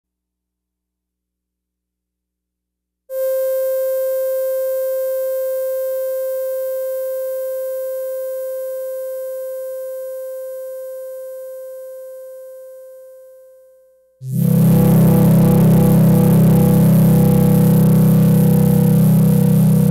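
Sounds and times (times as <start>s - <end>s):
synthesizer held note: 14.2s - 19.9s.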